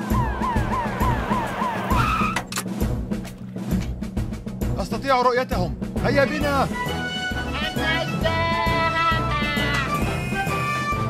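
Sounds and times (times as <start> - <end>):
cartoon siren wailing: 0.0 - 2.4
background music: 0.0 - 11.0
tyre screech: 0.4 - 2.6.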